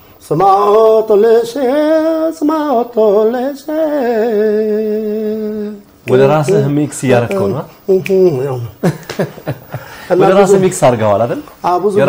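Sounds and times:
man singing unaccompanied: 0.2s - 8.8s.

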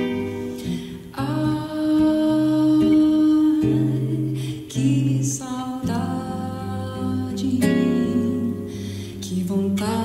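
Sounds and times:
acoustic guitar: 0.0s - 10.0s
woman singing wordless notes: 0.0s - 10.0s.

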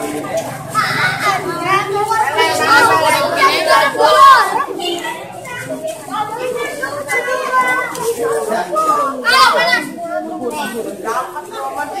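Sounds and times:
boys chattering and calling out: 0.0s - 12.0s.

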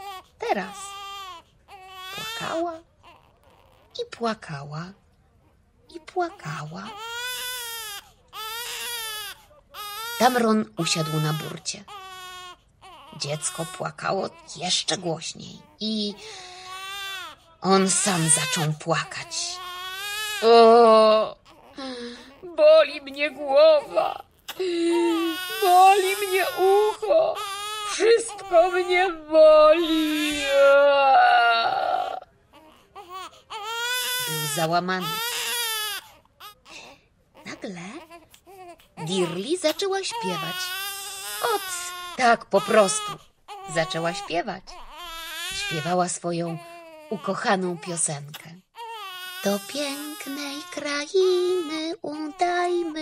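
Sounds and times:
baby crying: 0.0s - 3.9s, 6.0s - 53.0s.

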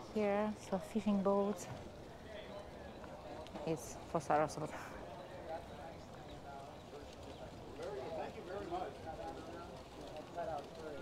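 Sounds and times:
outdoor background noise: 0.0s - 11.0s
people talking nearby: 0.0s - 11.0s.

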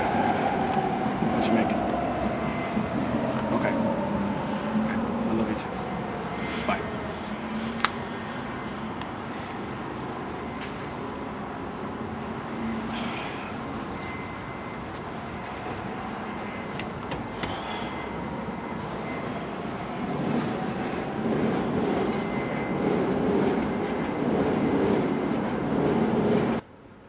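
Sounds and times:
rumbling vehicle noise: 0.0s - 27.0s.

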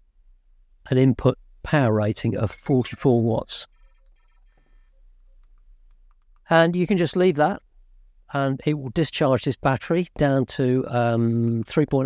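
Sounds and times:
electronic beeps: 2.4s - 4.9s.

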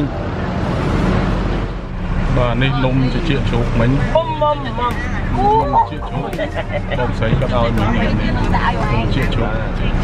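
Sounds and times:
minibus engine idling: 0.0s - 10.0s
street noise: 0.0s - 10.0s.

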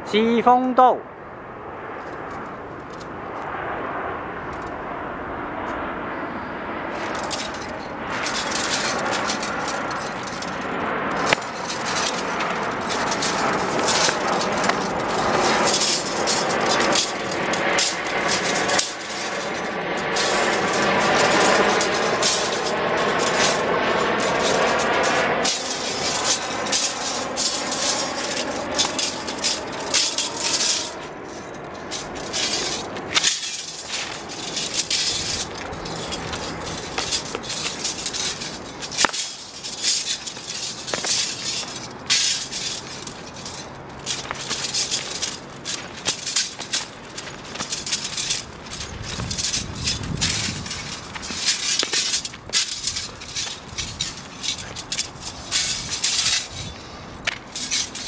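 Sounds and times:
steady rushing noise: 0.0s - 58.0s
footsteps scuffing on asphalt: 7.0s - 58.0s
sabre blade swishing: 7.0s - 58.0s.

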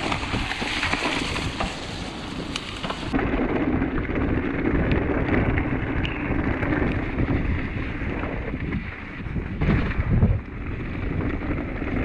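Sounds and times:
bike ticking: 0.0s - 12.0s
bike tyres rolling through mud: 0.0s - 12.0s
wind rumble on microphone: 0.0s - 12.0s.

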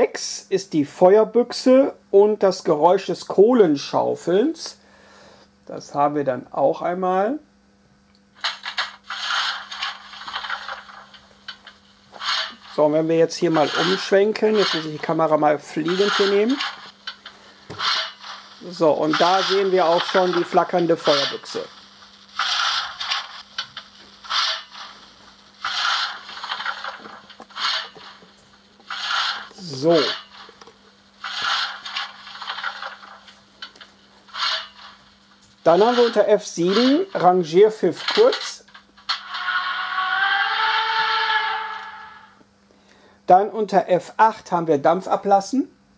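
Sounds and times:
faint steady hum: 0.0s - 45.9s
shovel scraping through coal: 8.4s - 11.6s, 12.2s - 21.7s, 22.4s - 25.0s, 25.6s - 30.5s, 31.2s - 33.4s, 34.3s - 35.0s, 35.6s - 37.3s, 37.9s - 39.5s.

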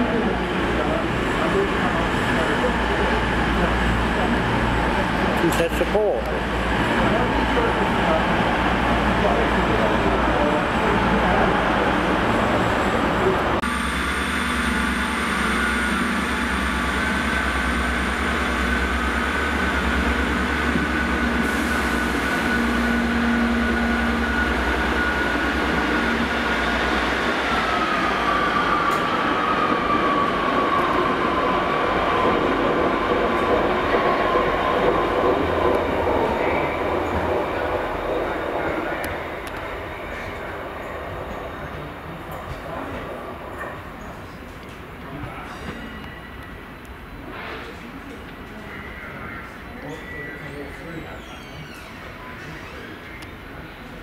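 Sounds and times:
diesel train engine whine: 0.0s - 42.0s.

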